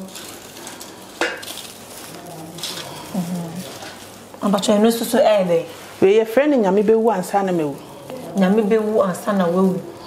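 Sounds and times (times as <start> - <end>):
dried herbs rustling and crackling: 0.0 - 10.0.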